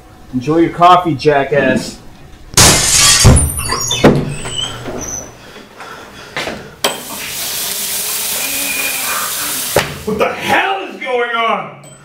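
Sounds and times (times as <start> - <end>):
door banging open: 2.6 - 4.9
short high squeaks: 2.8 - 5.3
sink tap running: 6.9 - 10.1.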